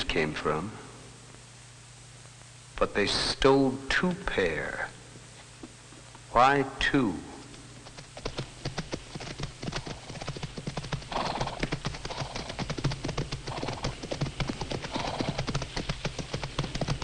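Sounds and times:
horses galloping hoofbeats: 7.8s - 17.0s
horses snorting: 7.9s - 17.0s.

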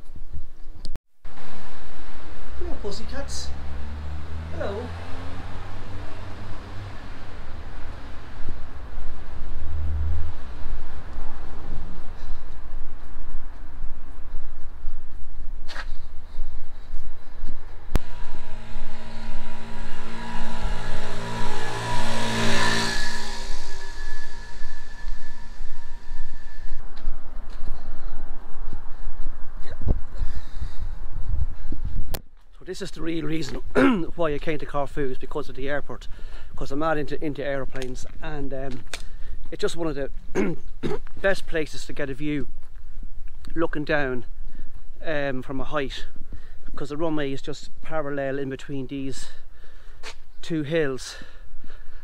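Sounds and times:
motorbike engine passing: 1.3s - 12.0s, 18.0s - 26.8s
low rumble: 16.3s - 32.7s.

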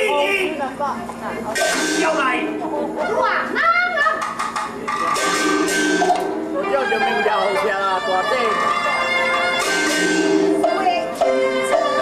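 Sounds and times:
sharp percussion strikes: 1.5s - 3.3s, 4.2s - 6.8s, 9.4s - 12.0s
opera ensemble held melody lines: 5.6s - 12.0s.

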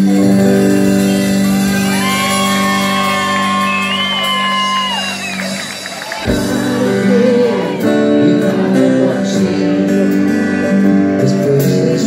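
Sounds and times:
long held high note: 0.0s - 5.7s
rock band playing: 0.0s - 12.0s.

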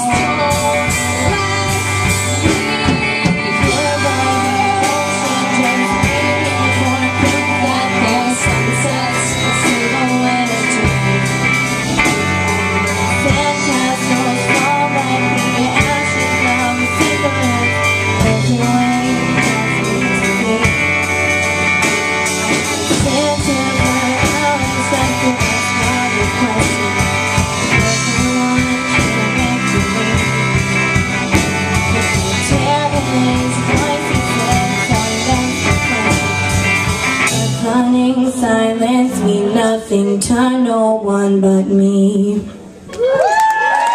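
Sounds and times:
drum kit: 0.0s - 39.6s
electric guitars: 0.0s - 40.4s
bass guitar: 0.0s - 40.8s
young woman singing: 0.0s - 42.6s.

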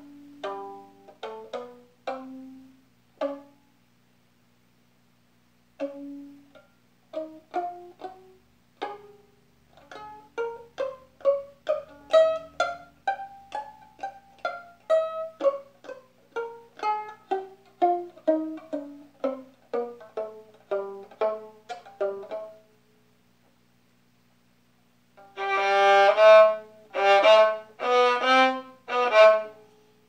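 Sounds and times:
violin plucked pizzicato: 0.0s - 3.7s, 5.8s - 22.7s, 25.2s - 29.8s.

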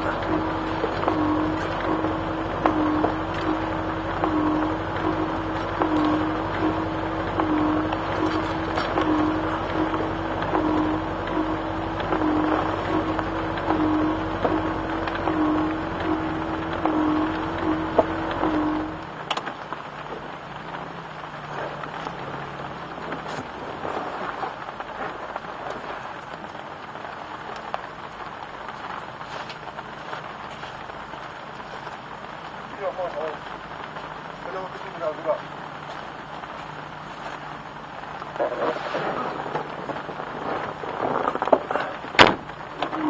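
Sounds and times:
car engine running with pulsing whine: 0.0s - 43.0s
rain falling on car: 0.0s - 43.0s.

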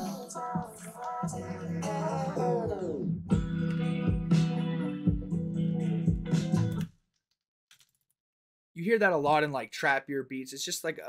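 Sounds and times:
programmed beat with plucked melody: 3.3s - 6.9s.

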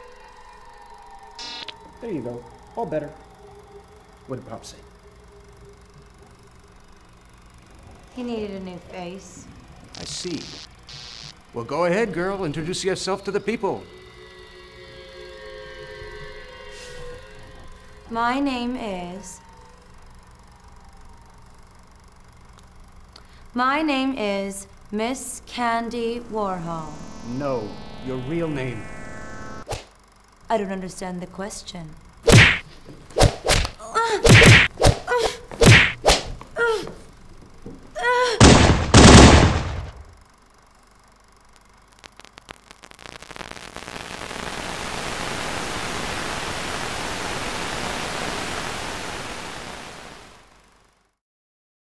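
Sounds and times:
electronic drone chord: 13.2s - 20.4s, 25.3s - 29.7s
loud sudden burst of noise: 38.4s - 40.2s.

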